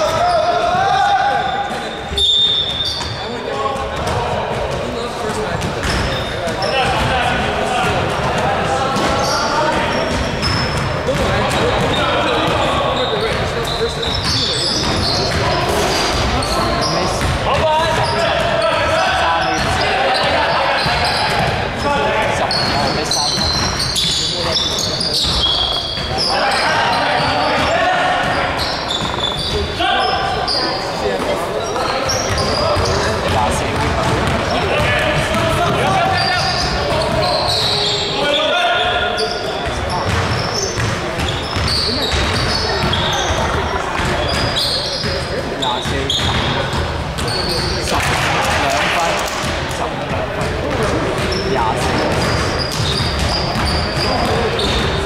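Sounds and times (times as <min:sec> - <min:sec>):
players calling out: 0:00.0 - 0:55.0
sneakers squeaking: 0:00.0 - 0:55.0
basketball bouncing: 0:17.1 - 0:18.6, 0:22.6 - 0:26.3, 0:27.1 - 0:29.8, 0:31.2 - 0:37.3, 0:39.6 - 0:55.0.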